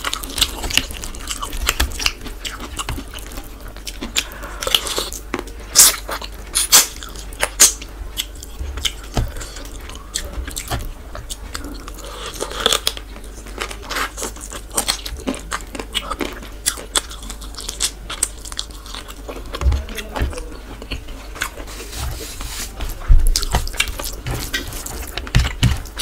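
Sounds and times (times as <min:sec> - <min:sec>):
close chewing with wet mouth clicks: 0:00.0 - 0:21.7, 0:23.3 - 0:26.0.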